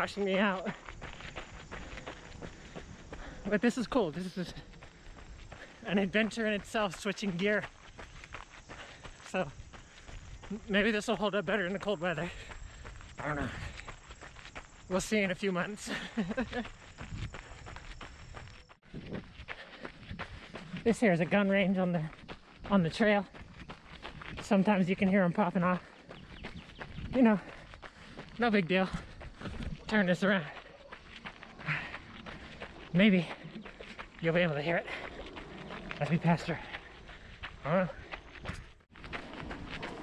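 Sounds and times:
running footsteps on gravel: 0.0 - 40.0.

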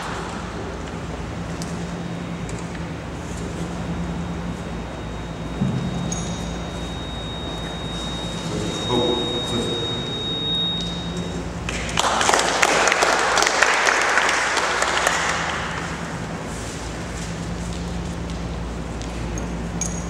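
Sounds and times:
audience applauding: 11.7 - 15.8.

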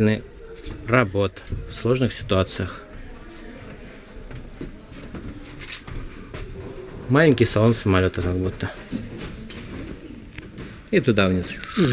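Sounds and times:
faint background voices: 0.0 - 11.9.

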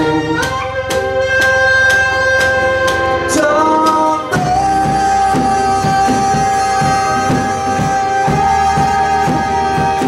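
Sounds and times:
drum kit steady beat: 0.0 - 10.0
live band playing: 0.0 - 10.0.

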